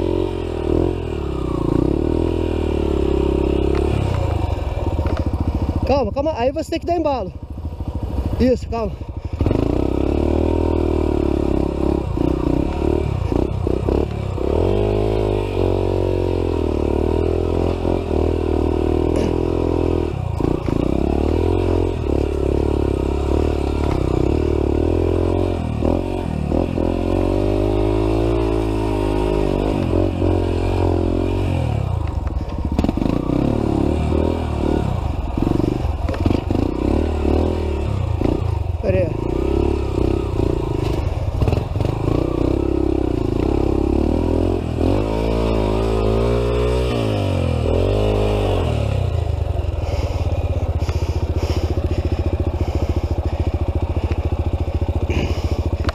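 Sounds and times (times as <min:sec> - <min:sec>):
motorcycle engine revving: 0:00.0 - 0:55.9.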